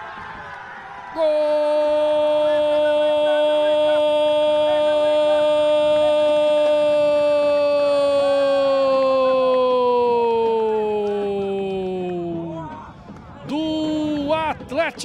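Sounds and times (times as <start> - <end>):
commentator's long goal call: 1.2 - 12.5.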